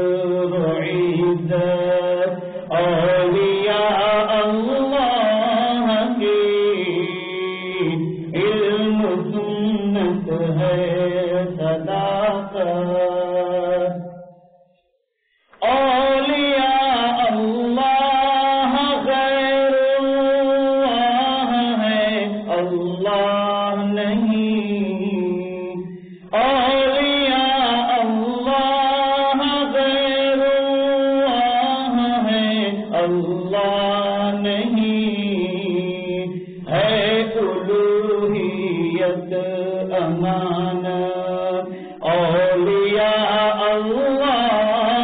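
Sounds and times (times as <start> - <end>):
person chanting devotional poem: 0.0 - 45.0.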